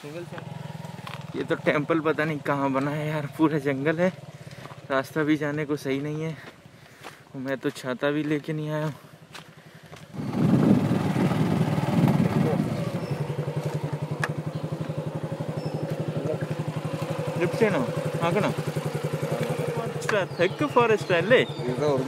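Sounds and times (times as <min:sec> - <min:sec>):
voices: 0:00.0 - 0:06.7, 0:10.2 - 0:22.0
motorcycle engine running: 0:00.0 - 0:06.9, 0:08.9 - 0:22.0.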